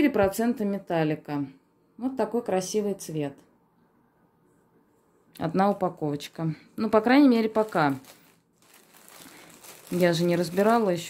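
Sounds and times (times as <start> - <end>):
plastic packaging crinkling: 5.6 - 11.0.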